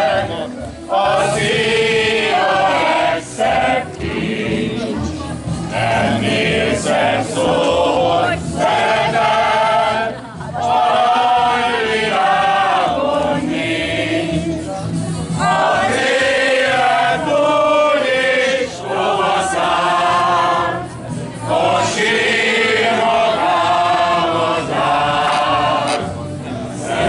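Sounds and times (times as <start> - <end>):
group of people singing: 0.0 - 27.0.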